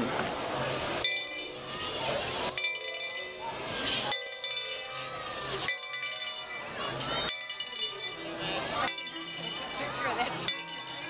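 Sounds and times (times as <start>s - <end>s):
crowd voices: 0.0s - 11.0s
bell ringing: 1.0s - 11.0s.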